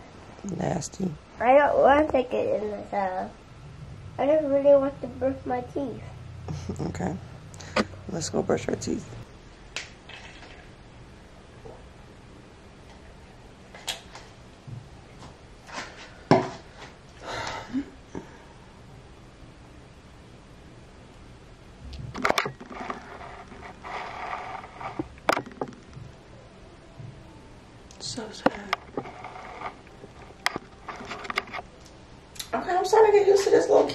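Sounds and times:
rubbing and scraping: 22.0 - 25.8, 28.6 - 31.7.

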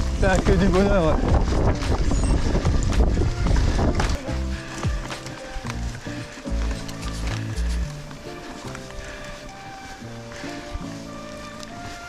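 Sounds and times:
wind on microphone: 0.0 - 8.3
background music with bass: 0.0 - 12.0
bike rattling over trail: 0.0 - 12.0.

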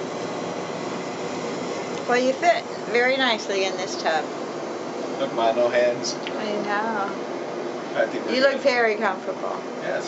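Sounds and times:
bathtub jet pump running: 0.0 - 10.0.

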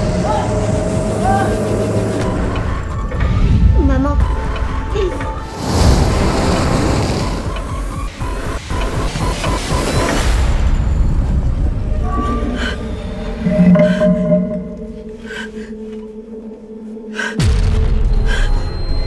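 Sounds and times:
low drone tones: 10.5 - 19.0
woman gasping breaths: 15.1 - 15.8.

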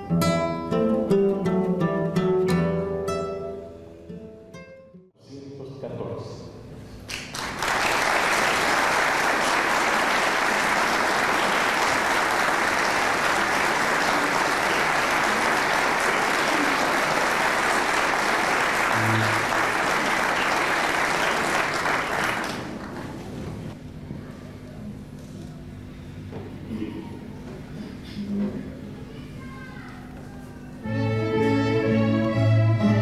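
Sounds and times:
audience applauding: 7.1 - 23.4.

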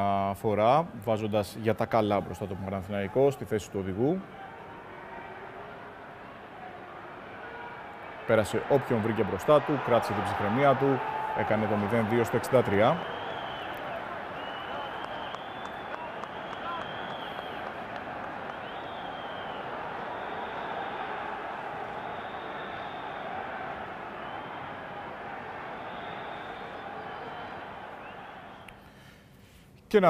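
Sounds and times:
stadium crowd din: 2.2 - 28.7.

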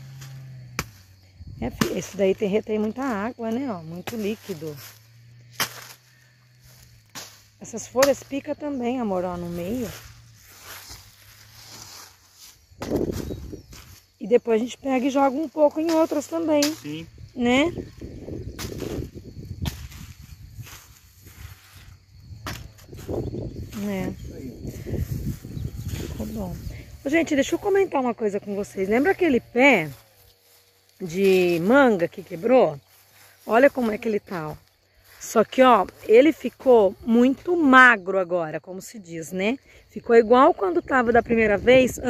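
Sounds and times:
machete chopping leaves: 0.0 - 2.2, 3.6 - 8.5, 9.9 - 14.0, 15.8 - 17.0, 18.6 - 21.8, 22.4 - 23.2
leaves rustling: 0.0 - 37.1
machete chopping banana trunk: 0.1 - 1.1, 4.0 - 6.1, 12.8 - 13.3, 18.6 - 20.0, 22.4 - 22.8.

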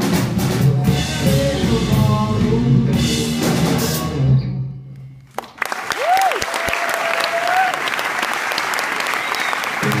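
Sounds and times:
audience applauding: 5.3 - 10.0.

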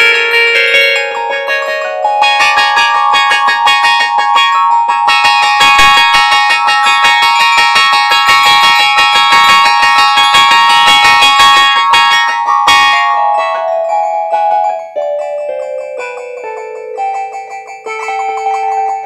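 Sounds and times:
held high keyboard tones: 0.0 - 19.0
rapid keyboard notes: 0.0 - 19.0.

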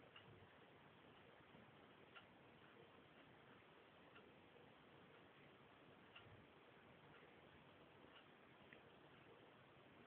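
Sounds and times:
faint regular ticks: 0.0 - 10.0.

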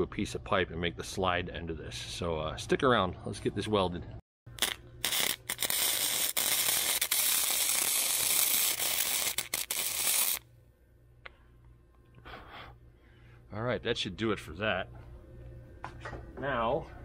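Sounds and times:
welder arc crackling: 4.5 - 10.4.

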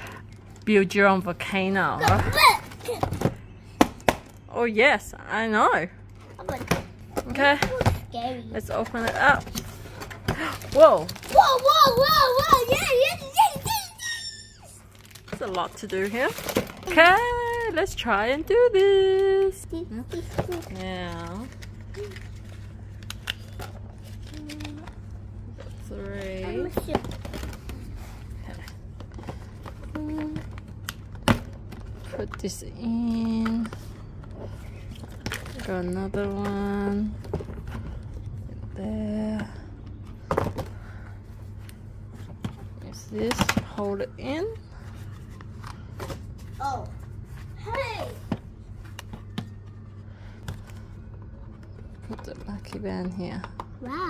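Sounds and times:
steady low hum: 0.0 - 54.0.

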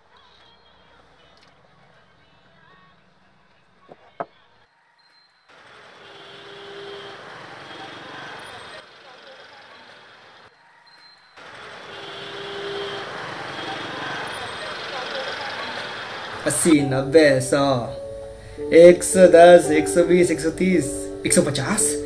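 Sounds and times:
street traffic: 0.0 - 4.7, 5.4 - 22.0
voices: 5.6 - 18.0, 18.6 - 22.0.

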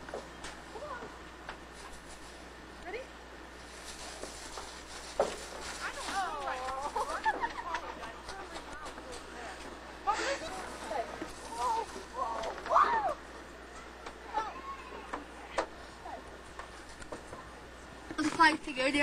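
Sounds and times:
children calling and squealing: 14.2 - 16.3.

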